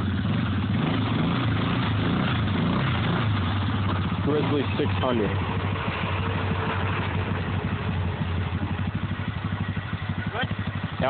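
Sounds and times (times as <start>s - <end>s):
atv engine idling: 0.0s - 11.0s.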